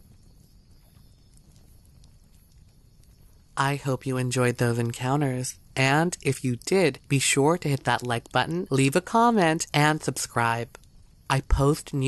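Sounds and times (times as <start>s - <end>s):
faint ticks: 0.0s - 3.6s, 10.7s - 11.3s.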